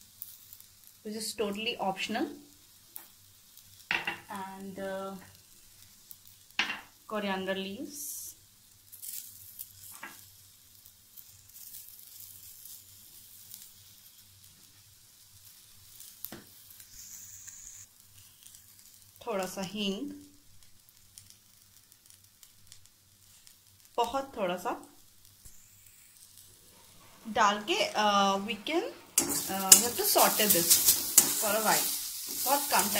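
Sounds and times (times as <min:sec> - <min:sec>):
spices sizzling in oil: 0:00.0 - 0:32.9
sharp hiss: 0:15.7 - 0:19.1, 0:25.3 - 0:32.9.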